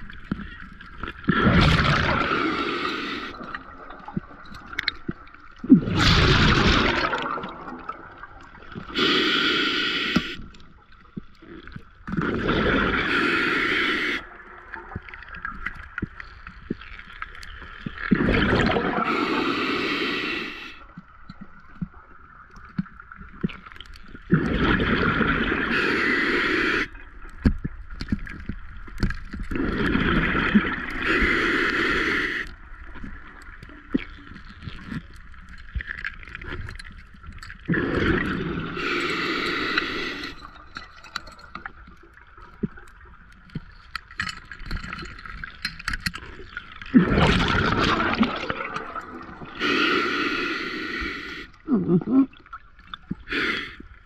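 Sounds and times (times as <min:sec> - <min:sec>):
bursts of exhaled bubbles: 0:01.2 - 0:04.4, 0:05.6 - 0:09.0, 0:12.1 - 0:13.3, 0:18.1 - 0:19.4, 0:24.3 - 0:25.8, 0:29.5 - 0:31.1, 0:37.6 - 0:39.0, 0:46.8 - 0:49.6
diver breathing through regulator: 0:01.9 - 0:03.4, 0:08.9 - 0:10.4, 0:12.7 - 0:14.3, 0:18.9 - 0:20.8, 0:25.4 - 0:27.0, 0:30.8 - 0:32.5, 0:37.7 - 0:40.6, 0:49.5 - 0:51.6, 0:53.2 - 0:54.0.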